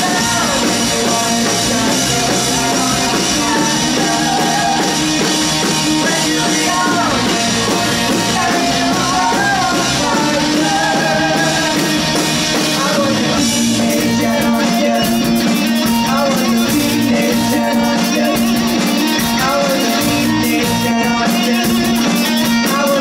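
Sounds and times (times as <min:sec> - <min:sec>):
bass guitar: 0:00.0 - 0:23.0
distorted electric guitars: 0:00.0 - 0:23.0
drum kit: 0:00.0 - 0:23.0
person singing: 0:00.0 - 0:23.0.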